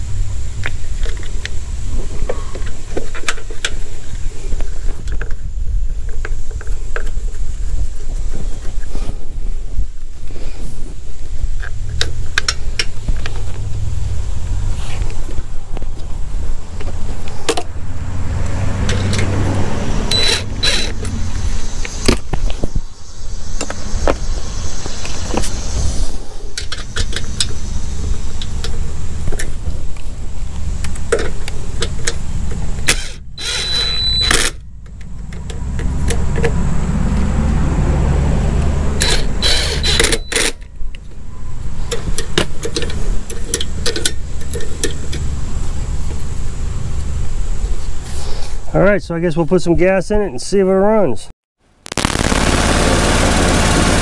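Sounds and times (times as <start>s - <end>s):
metal parts and tools clinking: 20.1s - 21.1s, 39.0s - 40.7s
cordless drill running: 33.4s - 34.2s.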